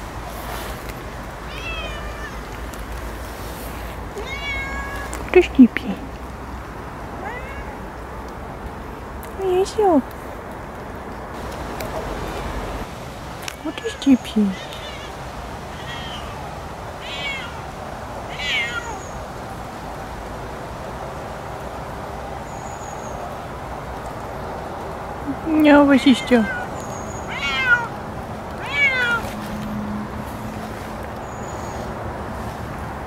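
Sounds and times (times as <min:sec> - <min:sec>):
cat meowing: 0:01.5 - 0:02.4, 0:04.2 - 0:05.2, 0:07.2 - 0:07.8, 0:13.6 - 0:16.4, 0:17.0 - 0:17.7, 0:18.3 - 0:19.1, 0:26.1 - 0:28.0, 0:28.6 - 0:29.3.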